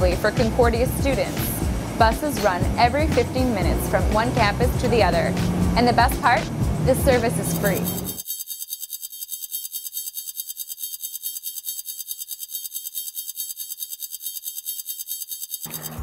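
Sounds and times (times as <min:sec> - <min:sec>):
high-pitched pulsing electronic sound: 0:00.1 - 0:16.0.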